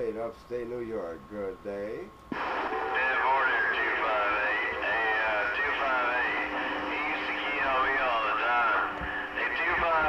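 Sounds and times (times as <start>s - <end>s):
radio static: 2.3s - 10.0s
garbled distant radio voices: 2.4s - 10.0s.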